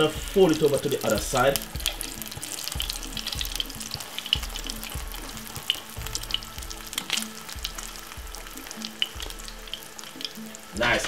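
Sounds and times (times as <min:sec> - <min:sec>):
egg sizzling in oil: 0:00.0 - 0:11.0.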